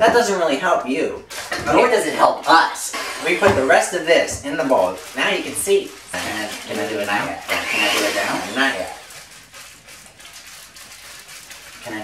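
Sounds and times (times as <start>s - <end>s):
paper bag rustling: 1.3s - 12.0s
dry mix pouring into bowl: 1.9s - 12.0s.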